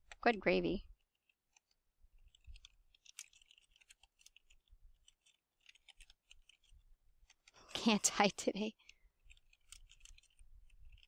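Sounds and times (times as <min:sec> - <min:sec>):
computer keyboard typing: 0:00.0 - 0:11.0.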